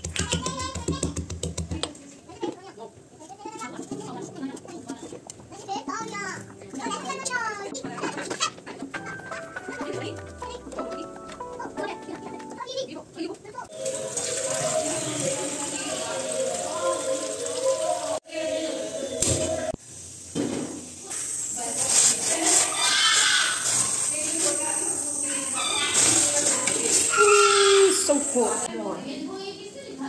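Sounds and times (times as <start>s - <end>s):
background music: 4.0s - 13.1s.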